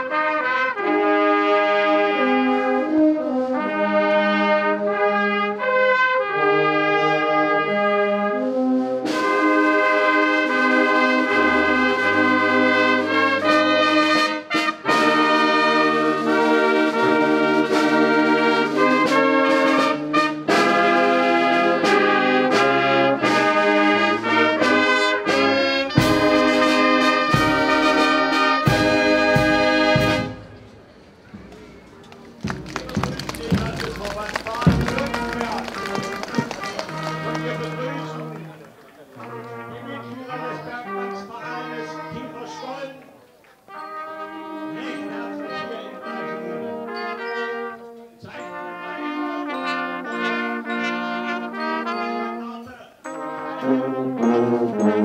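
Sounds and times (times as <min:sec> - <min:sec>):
marching brass band playing: 0:00.0 - 0:55.0
low drum beats: 0:31.3 - 0:36.9.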